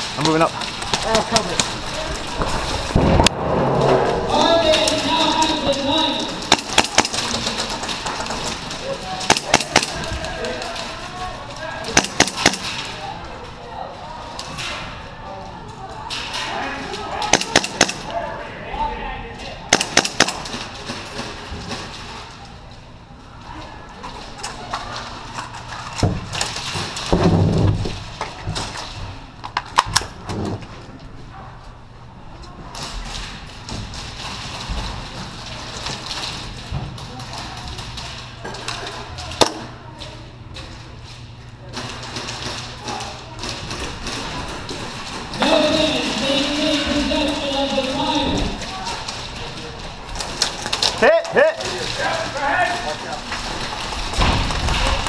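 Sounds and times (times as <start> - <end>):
airsoft guns firing: 4.4 - 10.5, 11.8 - 13.0, 17.2 - 18.1, 19.7 - 21.4.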